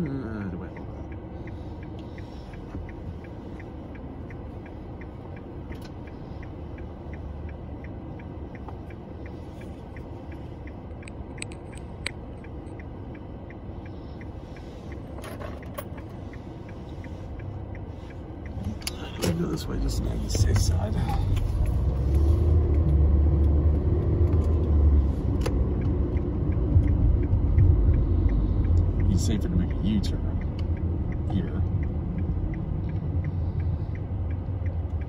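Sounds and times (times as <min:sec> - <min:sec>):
car rumble inside cabin: 0:00.0 - 0:35.0
turn signal ticking: 0:00.0 - 0:35.0.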